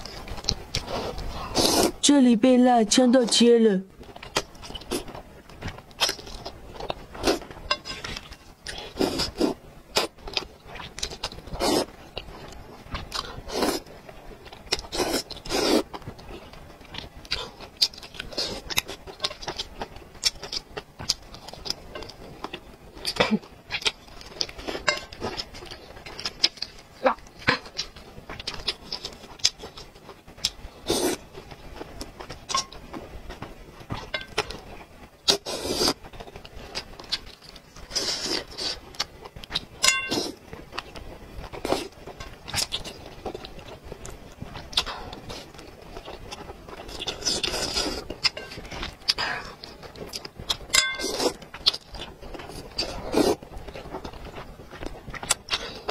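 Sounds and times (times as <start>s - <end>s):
slurping noodles: 0.8s - 2.0s, 8.7s - 10.1s, 11.5s - 11.9s, 14.9s - 15.9s, 35.3s - 36.0s.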